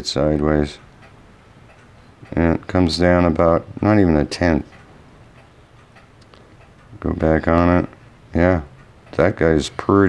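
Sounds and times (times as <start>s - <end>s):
low steady hum: 0.0s - 10.0s
faint light ticks: 0.8s - 3.4s, 4.5s - 8.1s, 8.7s - 9.9s.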